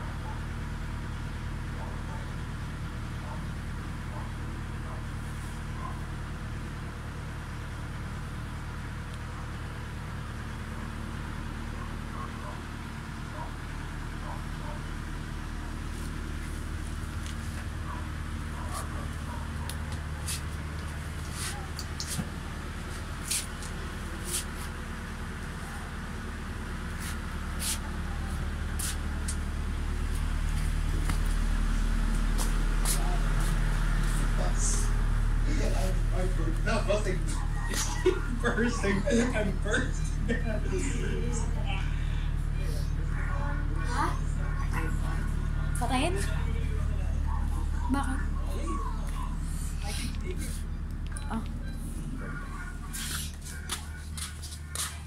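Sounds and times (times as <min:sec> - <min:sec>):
low motor-like hum: 0:00.0 - 0:55.0.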